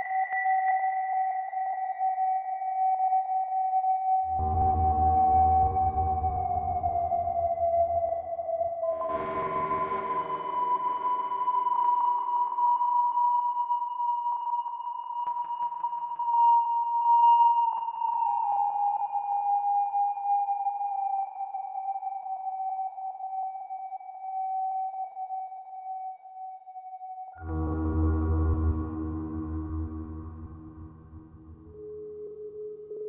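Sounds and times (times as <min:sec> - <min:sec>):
fainter higher synth tone falling: 0:27.4 - 0:31.8
sustained synthesizer tone gliding down: 0:27.4 - 0:31.8.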